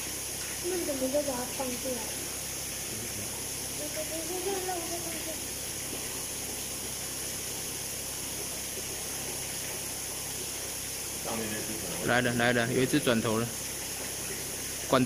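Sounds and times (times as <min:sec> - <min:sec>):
steady hiss: 0:00.0 - 0:15.0.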